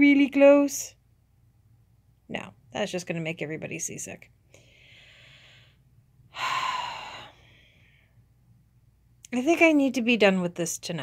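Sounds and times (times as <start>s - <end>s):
woman sighing: 6.3s - 7.6s.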